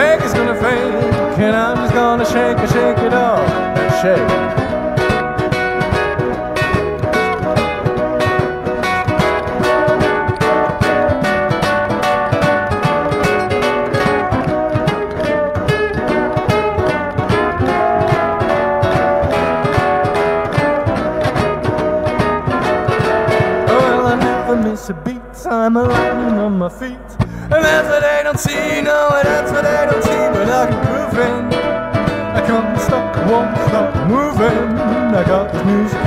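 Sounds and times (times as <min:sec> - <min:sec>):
blues band instrumental: 0:00.0 - 0:24.6, 0:27.2 - 0:36.0.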